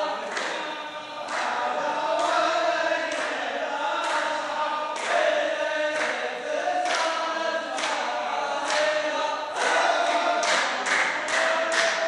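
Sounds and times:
men chanting in unison: 0:00.0 - 0:12.0
sharp handclaps: 0:00.0 - 0:12.0.

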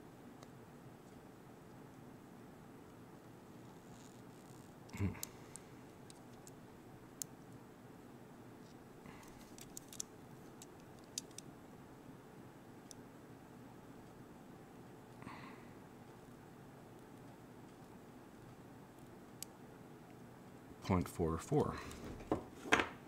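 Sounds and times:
person speaking: 0:20.8 - 0:22.1.

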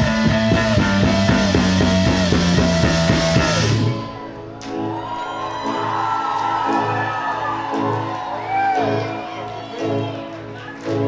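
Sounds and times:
sustained electric guitar: 0:00.0 - 0:11.0.

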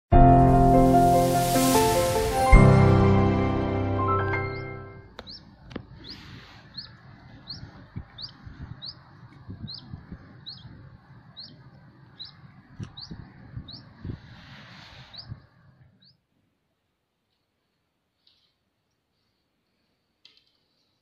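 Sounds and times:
outdoor hiss: 0:00.4 - 0:04.0
bird chirping: 0:04.1 - 0:16.3.

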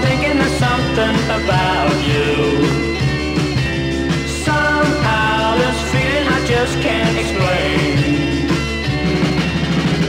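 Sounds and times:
rock and roll band playing: 0:00.0 - 0:10.0.

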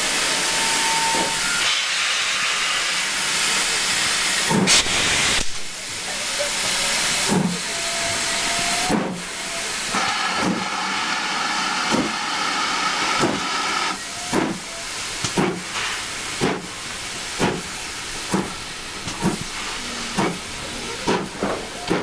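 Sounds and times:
steam hissing: 0:00.0 - 0:22.0
steam locomotive exhaust chuffs: 0:06.4 - 0:22.0.

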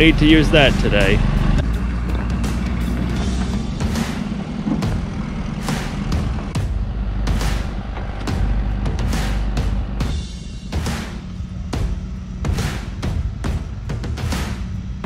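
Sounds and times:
background music: 0:00.0 - 0:15.0
truck engine running: 0:00.0 - 0:15.0.

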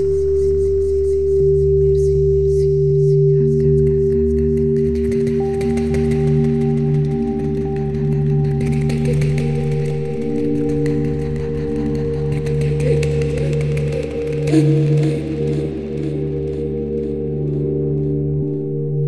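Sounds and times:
wavering wordless voice-like sound: 0:02.7 - 0:17.5
electronic drone music: 0:02.8 - 0:19.0.

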